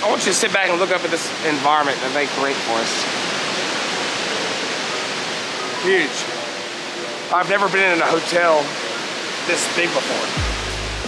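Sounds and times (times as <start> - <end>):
rushing falling water: 0.0 - 11.0.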